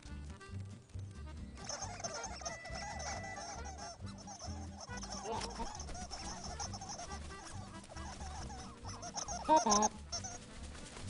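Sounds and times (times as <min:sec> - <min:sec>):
cartoon birds squawking: 0:01.6 - 0:10.5.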